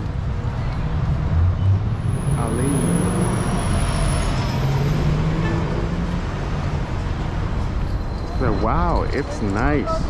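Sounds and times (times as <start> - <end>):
city street traffic: 0.0 - 10.0.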